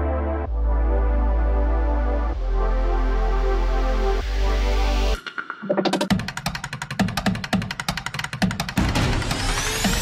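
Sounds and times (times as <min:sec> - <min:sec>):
fast drum hits: 0:06.0 - 0:10.0.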